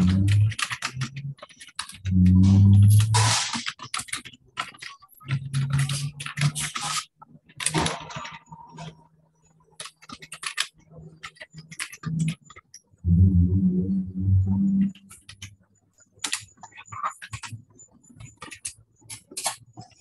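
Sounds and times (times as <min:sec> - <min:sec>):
computer keyboard typing: 0:00.0 - 0:09.0, 0:09.7 - 0:12.8, 0:16.2 - 0:19.6
low droning sound: 0:13.0 - 0:15.0.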